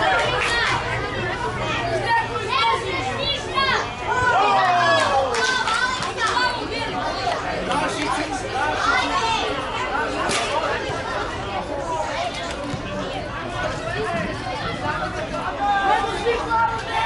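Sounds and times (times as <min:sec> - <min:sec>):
children shouting: 0:00.0 - 0:07.8, 0:08.6 - 0:11.3.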